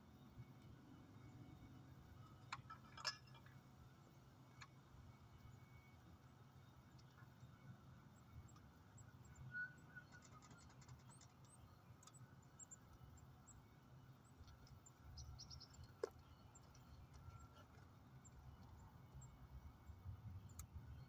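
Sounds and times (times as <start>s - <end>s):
low hum of distant traffic: 0.0s - 21.0s.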